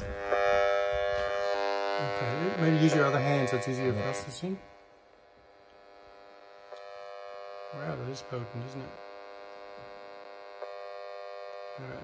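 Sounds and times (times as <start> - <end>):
meter speaker buzzing: 0.0 - 12.0.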